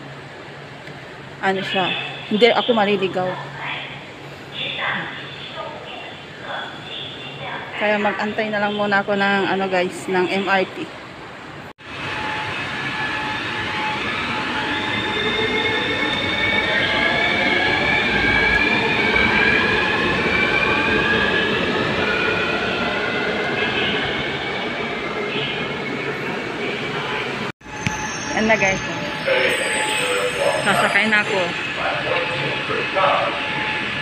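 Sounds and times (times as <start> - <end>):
train pulling into station: 0.0 - 34.0.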